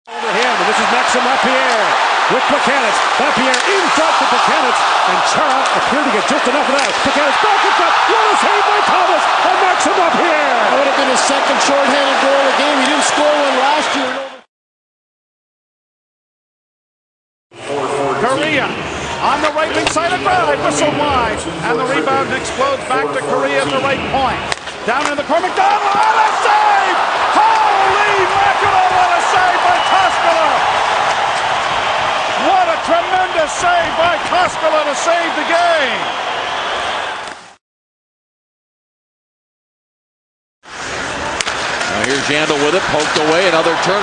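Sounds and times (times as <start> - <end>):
arena noise: 0.1 - 14.4, 17.6 - 37.6, 40.7 - 44.0
commentator speaking: 0.1 - 14.4, 17.7 - 30.6, 32.4 - 36.0, 42.0 - 44.0.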